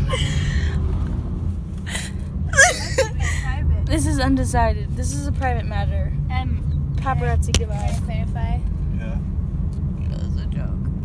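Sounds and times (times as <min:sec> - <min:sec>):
woman laughing breathily: 0:00.0 - 0:00.8, 0:01.9 - 0:03.5
car road rumble: 0:00.0 - 0:11.0.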